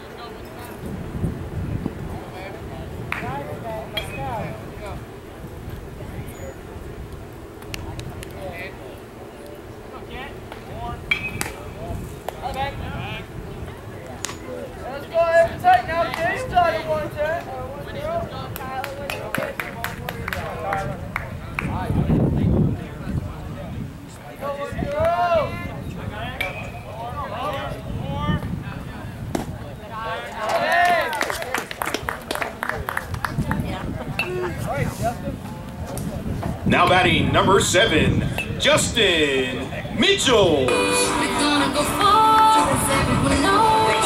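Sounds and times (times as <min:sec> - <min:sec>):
people calling and shouting: 0:33.4 - 0:44.0.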